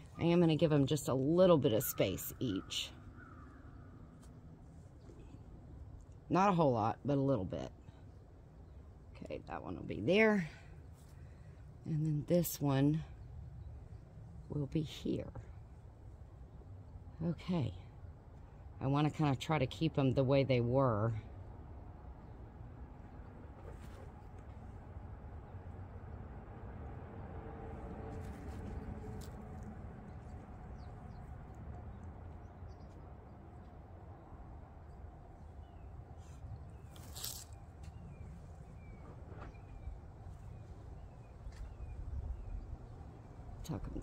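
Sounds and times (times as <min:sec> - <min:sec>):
hands rustling soil: 0:36.2 - 0:38.0
wind rumble on microphone: 0:38.0 - 0:44.0.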